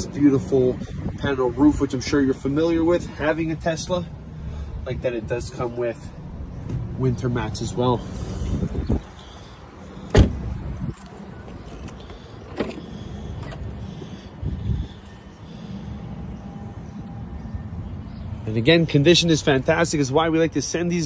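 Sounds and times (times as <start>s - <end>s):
low rumbling noise: 6.0s - 19.8s
car door latch click: 10.1s - 10.4s
car door thud: 10.1s - 10.5s.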